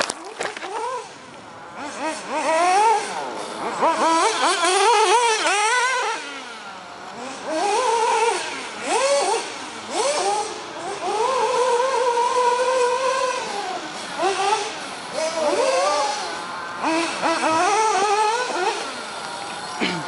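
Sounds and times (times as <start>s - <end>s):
rc truck engine revving: 0.0s - 20.0s.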